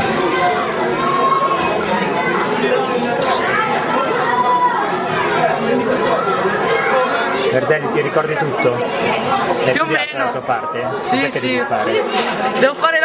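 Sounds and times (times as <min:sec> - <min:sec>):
boys chattering: 0:00.0 - 0:13.0.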